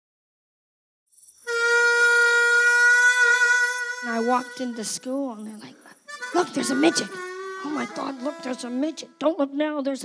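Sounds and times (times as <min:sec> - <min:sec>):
reedy wind instrument note: 0:01.4 - 0:05.4, 0:06.1 - 0:09.4.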